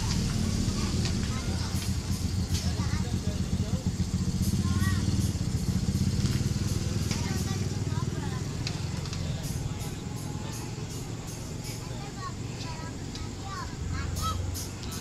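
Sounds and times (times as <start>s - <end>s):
electric train humming: 0.0s - 15.0s.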